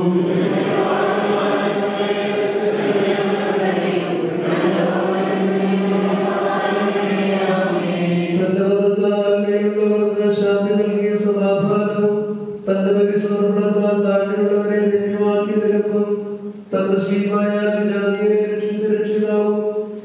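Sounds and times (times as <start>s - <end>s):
group chanting a hymn: 0.0s - 18.4s.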